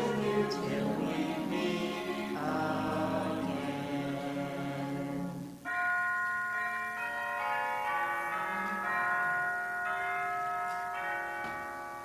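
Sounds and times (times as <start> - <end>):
bell-like held notes: 5.6 - 12.0.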